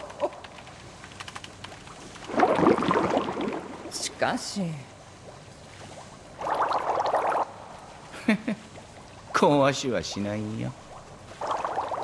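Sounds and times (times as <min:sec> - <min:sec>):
rapid keyboard typing: 0:00.0 - 0:02.2.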